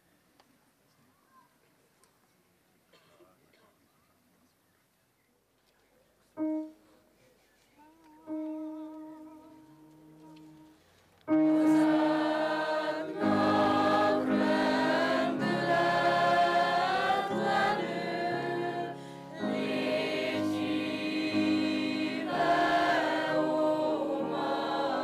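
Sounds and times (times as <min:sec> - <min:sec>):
choir singing: 0:11.3 - 0:25.0.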